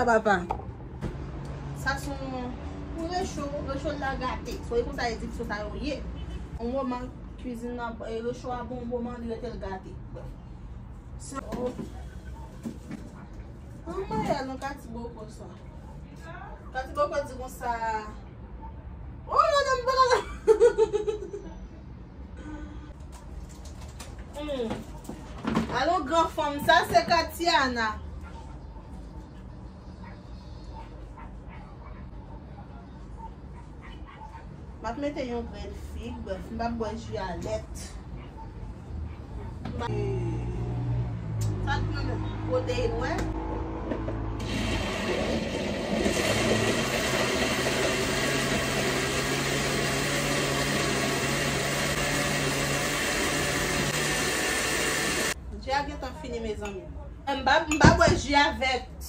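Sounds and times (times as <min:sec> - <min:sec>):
countertop blender running: 0:44.3 - 0:55.4.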